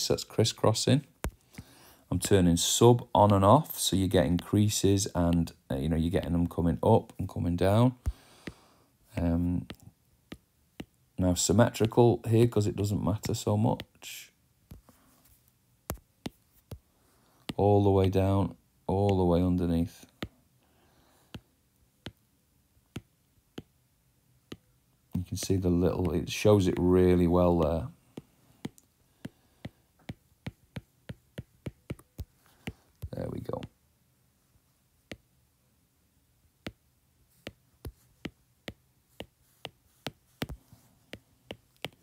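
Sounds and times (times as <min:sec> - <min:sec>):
stylus tapping on glass screen: 0:09.2 - 0:11.0.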